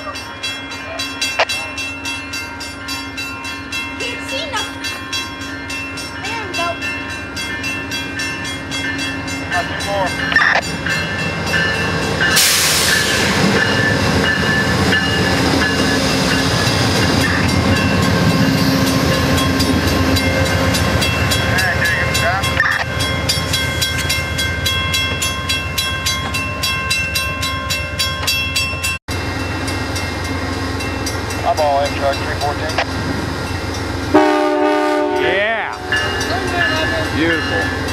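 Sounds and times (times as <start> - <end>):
diesel locomotive rumble: 1.4 - 37.9.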